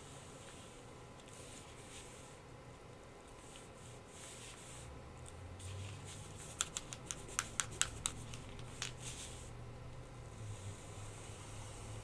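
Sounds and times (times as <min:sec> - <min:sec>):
low steady hum: 0:00.0 - 0:12.0
paint marker ball rattling: 0:06.4 - 0:09.0.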